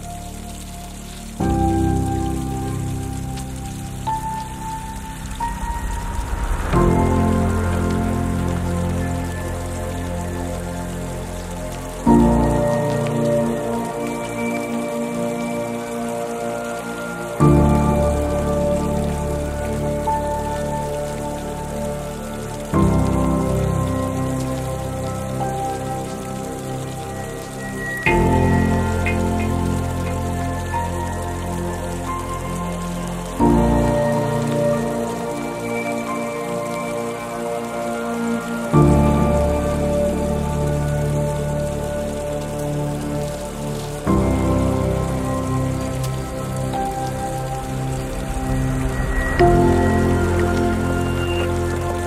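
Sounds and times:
slow piano music: 0.0 - 52.0
soft rain: 0.0 - 52.0.

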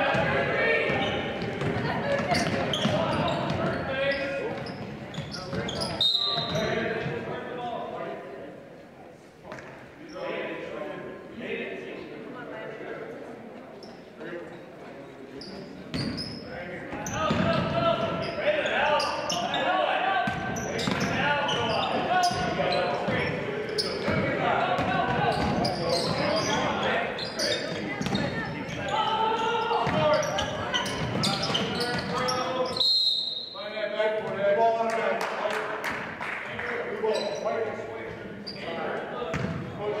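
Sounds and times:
many overlapping voices: 0.0 - 40.0
referee's whistle blast: 32.7 - 33.6.

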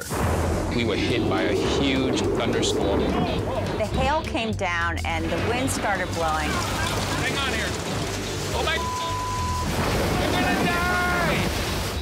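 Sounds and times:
storm wind and rain: 5.9 - 12.0
short steady beep: 8.8 - 9.7
man shouting: 10.4 - 11.5.

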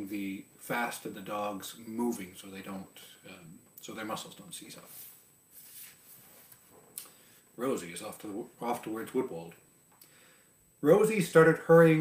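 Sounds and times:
faint high whine: 0.0 - 12.0
soft breath: 10.0 - 10.6.

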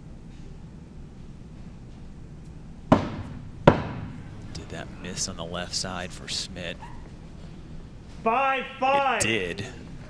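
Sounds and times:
axes striking wooden targets: 2.9 - 4.2.

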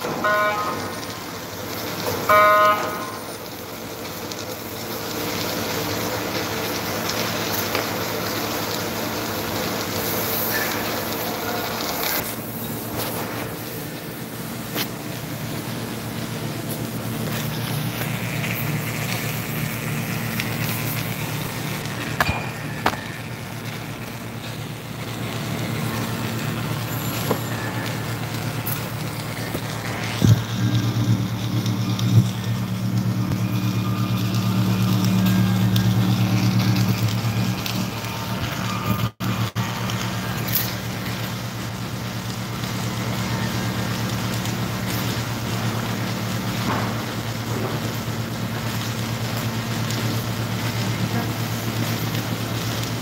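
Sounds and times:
welding machine humming and hissing: 0.0 - 53.0.

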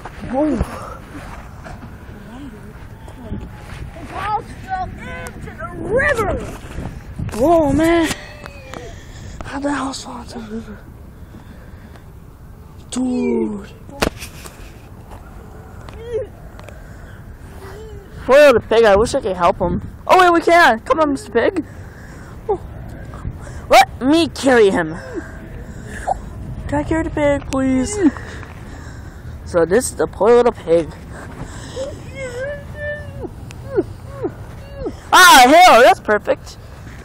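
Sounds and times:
low background rumble: 0.0 - 37.0
high-pitched whining cries: 8.1 - 9.2, 31.6 - 35.4.

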